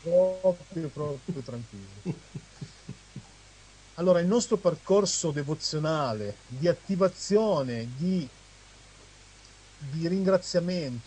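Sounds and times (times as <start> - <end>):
faint steady hum: 0.0 - 11.0
soft chuckling: 0.8 - 3.4.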